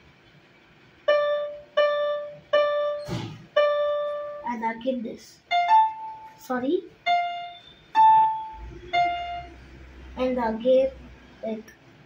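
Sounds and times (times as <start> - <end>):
keyboard single notes: 1.0 - 4.5, 5.5 - 6.4, 7.0 - 9.6.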